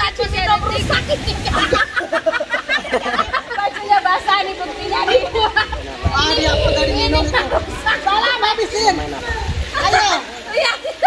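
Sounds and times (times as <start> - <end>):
women talking and calling out: 0.0 - 2.1, 3.1 - 11.0.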